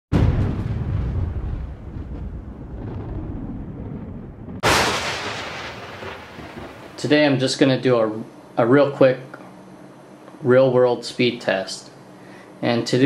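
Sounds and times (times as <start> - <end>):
deep booming hits: 0.1 - 7.2.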